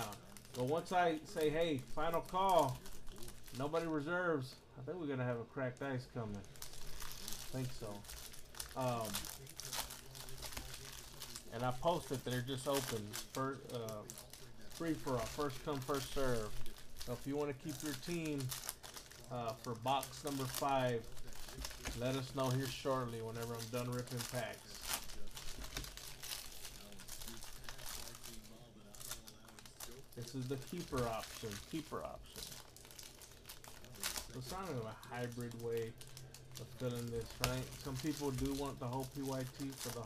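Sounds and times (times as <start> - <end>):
foil pack tearing and crinkling: 0.0 - 3.9, 6.3 - 40.0.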